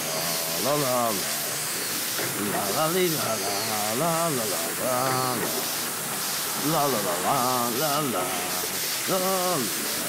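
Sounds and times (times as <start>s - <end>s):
shower head spraying water: 0.0s - 10.0s.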